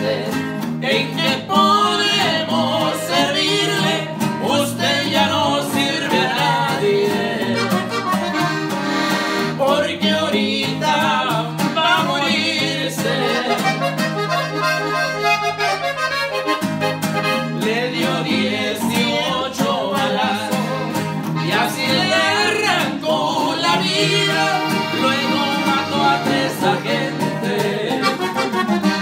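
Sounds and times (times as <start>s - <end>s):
man singing: 0.0s - 8.4s, 9.3s - 14.0s, 17.4s - 28.6s
button accordion: 0.0s - 29.0s
strummed guitar: 0.0s - 29.0s.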